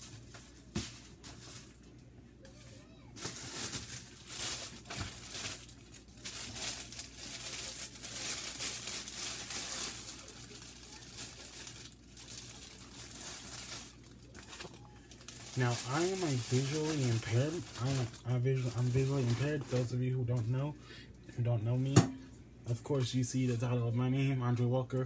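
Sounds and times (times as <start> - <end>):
plastic bag crinkling: 3.2 - 21.9.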